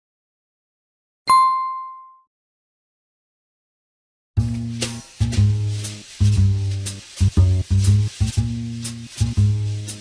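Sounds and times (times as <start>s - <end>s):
bright bell ding: 1.3s - 2.3s.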